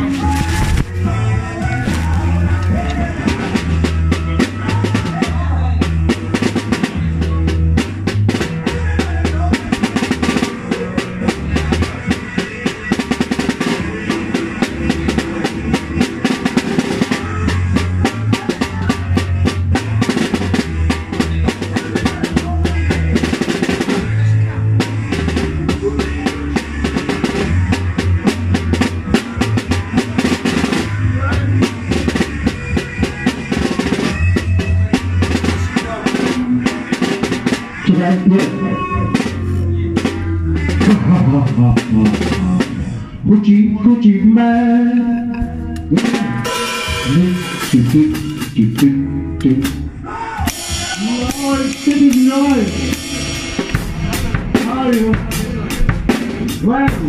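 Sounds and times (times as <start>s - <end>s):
drum kit: 0.0s - 57.0s
electric bass: 0.0s - 57.0s.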